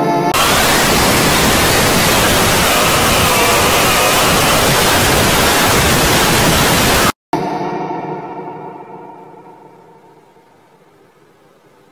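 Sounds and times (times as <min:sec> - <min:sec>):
loud static hiss: 0:00.3 - 0:07.2
music notes: 0:07.4 - 0:11.1
faint wavering tone: 0:07.4 - 0:11.9.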